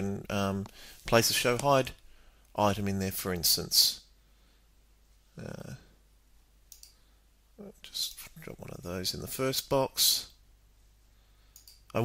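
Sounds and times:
computer mouse clicks: 0:06.7 - 0:07.0, 0:11.5 - 0:12.0.

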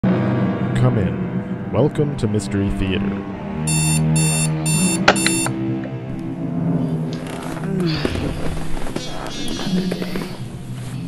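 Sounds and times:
alarm clock beeping: 0:03.7 - 0:05.5.

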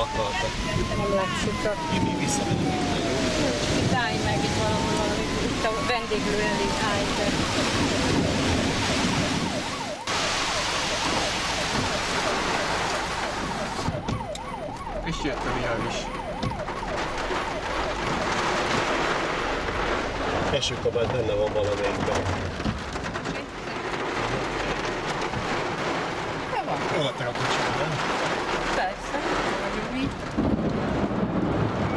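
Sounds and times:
emergency siren yelping: 0:00.0 - 0:21.0
rain and wind on car: 0:00.0 - 0:31.9.

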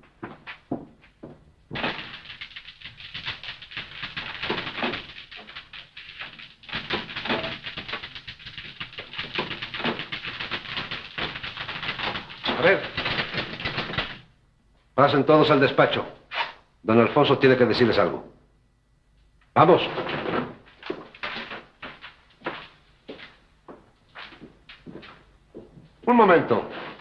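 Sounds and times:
manual typewriters clattering: 0:01.7 - 0:14.3.

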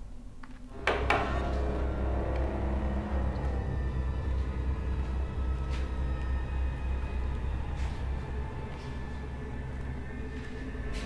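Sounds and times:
low rumbling drone: 0:00.7 - 0:11.0
sustained eerie tones: 0:00.7 - 0:11.0.

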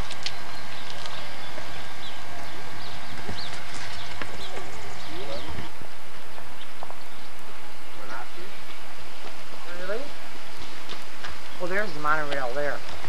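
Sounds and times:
small birds chirping: 0:00.0 - 0:13.0
indistinct voices: 0:01.0 - 0:10.3.

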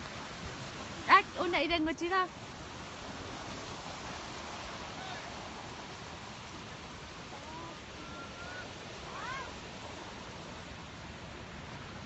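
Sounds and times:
water at shore: 0:00.0 - 0:12.0
wind: 0:00.0 - 0:12.0.

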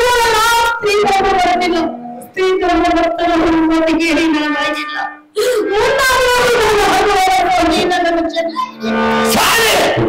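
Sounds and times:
high singing voice wailing: 0:00.0 - 0:10.0.

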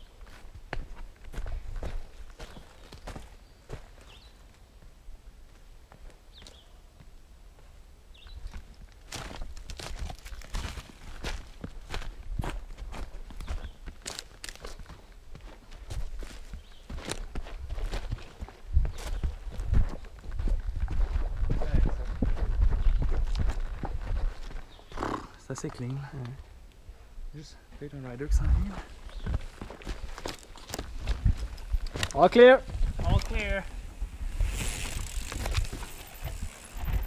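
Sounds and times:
footsteps on dirt and twigs: 0:00.0 - 0:04.9, 0:07.6 - 0:26.6, 0:27.7 - 0:37.0.

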